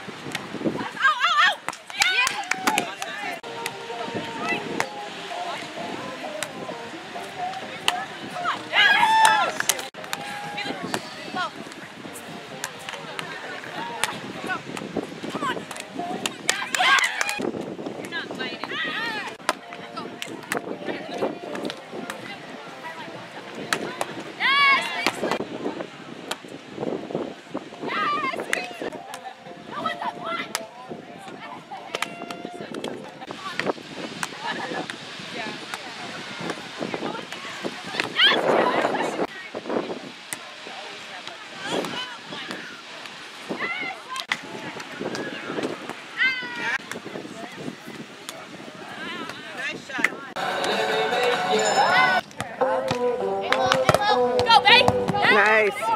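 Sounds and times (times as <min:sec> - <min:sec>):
background chatter: 0:00.0 - 0:55.9
woman shouting high-pitched: 0:00.8 - 0:02.9
voices calling out: 0:00.8 - 0:26.8, 0:27.4 - 0:55.9
hand slapping volleyball: 0:15.7 - 0:18.2.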